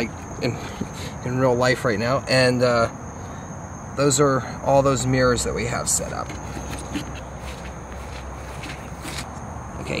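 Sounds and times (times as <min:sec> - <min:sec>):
steady hiss and low hum: 0:00.0 - 0:10.0.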